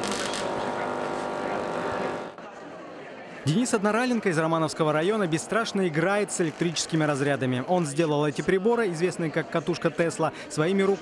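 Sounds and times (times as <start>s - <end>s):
crackling hiss: 0.0s - 2.4s
tesla coil spark buzzing: 0.0s - 2.4s.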